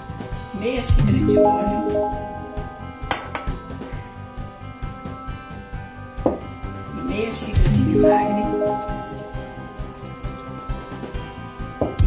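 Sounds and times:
background music: 0:00.0 - 0:12.0
glass bowl clinking: 0:03.0 - 0:03.6, 0:08.0 - 0:11.0.

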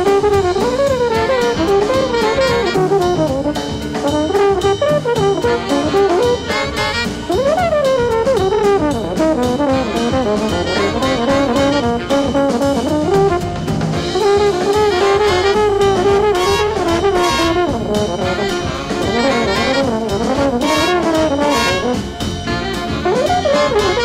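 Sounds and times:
brass section playing: 0:00.0 - 0:24.0
drum kit beat: 0:00.0 - 0:24.0.

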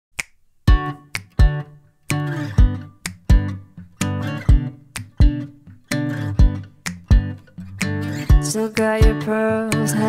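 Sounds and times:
finger snaps: 0:00.2 - 0:10.0
acoustic guitar chords: 0:00.7 - 0:10.0.

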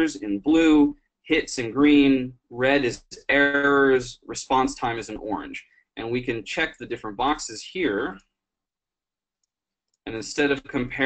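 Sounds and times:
man's voice: 0:00.0 - 0:08.2, 0:10.1 - 0:11.0.

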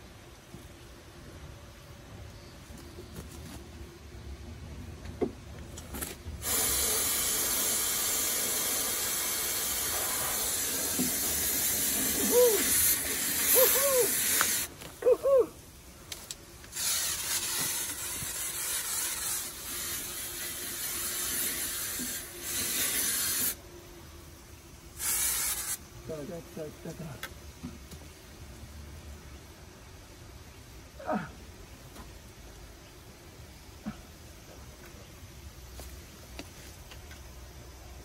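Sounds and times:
aerosol can spraying hiss: 0:06.4 - 0:14.8, 0:16.7 - 0:23.6, 0:25.0 - 0:25.9
short hooting vocal sounds: 0:13.4 - 0:14.2.

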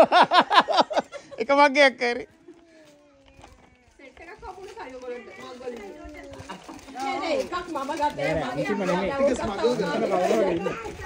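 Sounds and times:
overlapping group chatter: 0:00.9 - 0:11.0.

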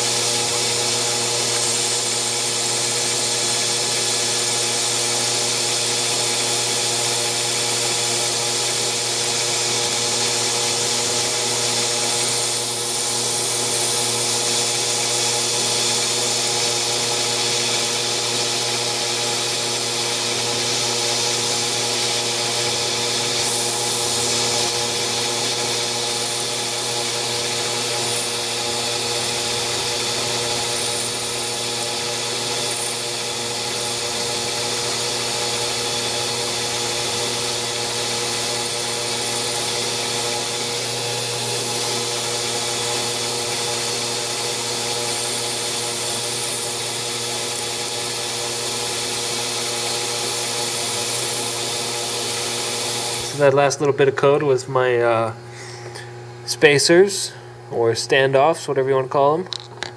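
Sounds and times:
hiss of metal cutting: 0:00.0 - 0:53.6
lathe motor and spindle hum: 0:00.0 - 0:59.9.

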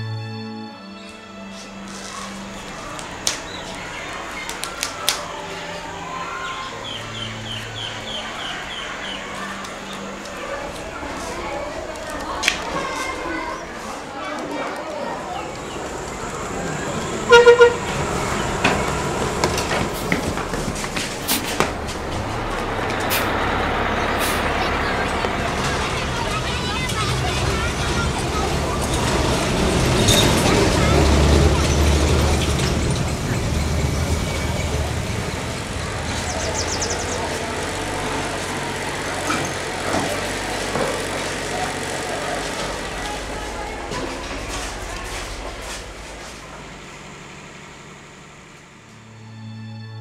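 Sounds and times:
bus engine rumbling: 0:00.2 - 0:50.0
faint distant voices: 0:01.1 - 0:48.9
brief horn-like tone: 0:17.2 - 0:18.0.

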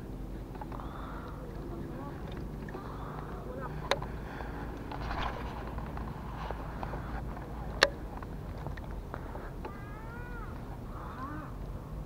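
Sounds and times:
animal's drawn-out call: 0:09.6 - 0:11.6.

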